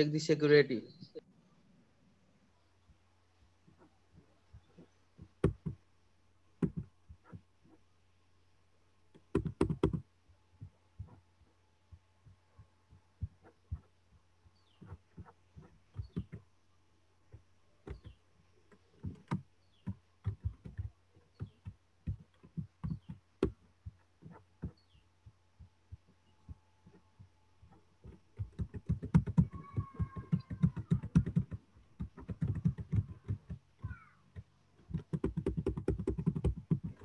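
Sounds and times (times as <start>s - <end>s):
low electrical hum: 0.0s - 30.2s
keyboard and mouse clicks: 9.1s - 10.0s, 26.8s - 33.6s, 34.3s - 37.0s.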